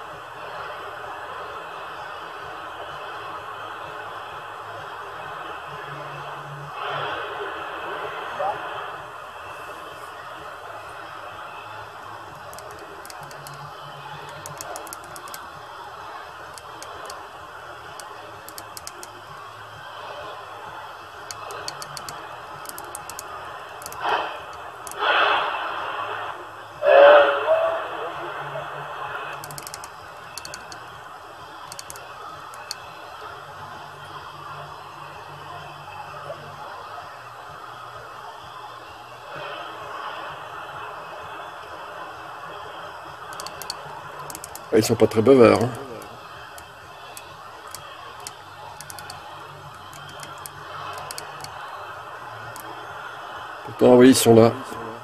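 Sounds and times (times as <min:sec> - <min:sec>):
distant radio voices: 0:00.0 - 0:55.0
radio static hiss: 0:00.1 - 0:55.0.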